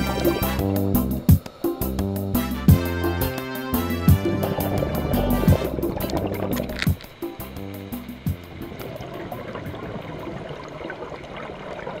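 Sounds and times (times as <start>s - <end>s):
underwater exhaled bubbles: 4.2s - 6.9s, 8.4s - 12.0s.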